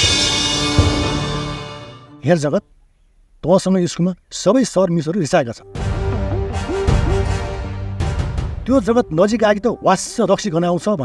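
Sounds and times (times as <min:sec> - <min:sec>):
dramatic music sting: 0:00.0 - 0:02.2
man speaking: 0:02.2 - 0:02.7, 0:03.4 - 0:05.7, 0:08.6 - 0:11.0.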